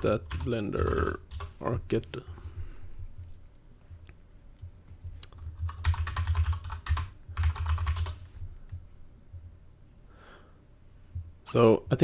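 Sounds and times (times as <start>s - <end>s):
typing on computer keyboard: 0.0s - 1.5s, 5.3s - 8.2s.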